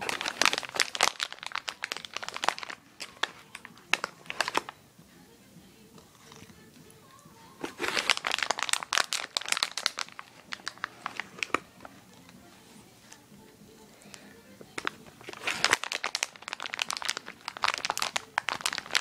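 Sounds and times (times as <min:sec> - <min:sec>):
crinkly treat bag rustling: 0:00.0 - 0:04.8, 0:07.4 - 0:13.2, 0:14.0 - 0:19.0.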